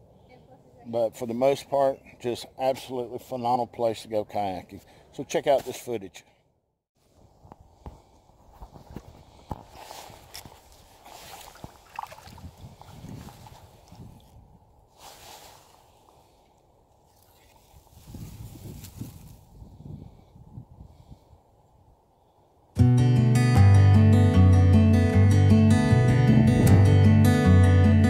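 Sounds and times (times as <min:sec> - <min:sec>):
paddle strokes in water: 0:09.6 - 0:14.4.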